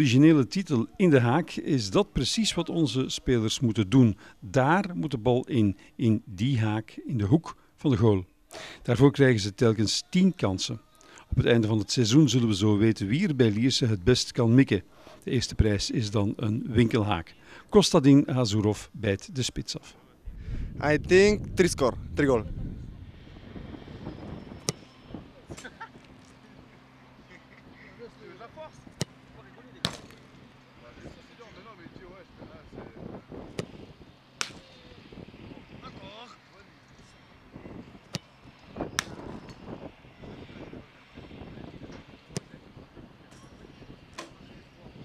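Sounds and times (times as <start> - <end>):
outdoor background noise: 0.0 - 45.0
football kick thump: 29.8 - 30.2.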